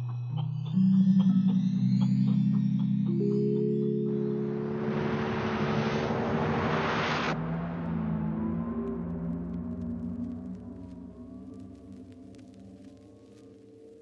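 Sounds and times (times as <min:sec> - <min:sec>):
droning synth tones: 0:00.7 - 0:14.0
loud wash of noise: 0:04.1 - 0:09.2.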